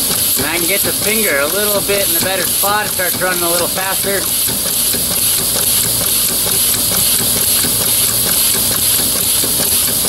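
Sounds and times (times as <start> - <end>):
mechanical clatter of engine linkage: 0.0 - 10.0.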